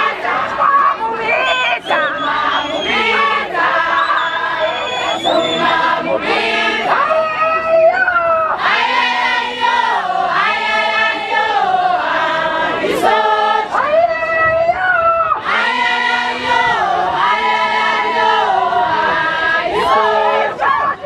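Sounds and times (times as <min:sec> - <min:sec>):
crowd singing in chorus: 0:00.0 - 0:07.7, 0:08.4 - 0:14.8, 0:15.4 - 0:21.0.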